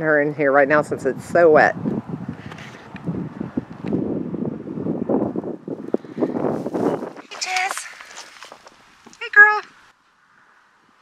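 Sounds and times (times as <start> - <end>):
wind buffeting microphone: 0.0 - 9.9.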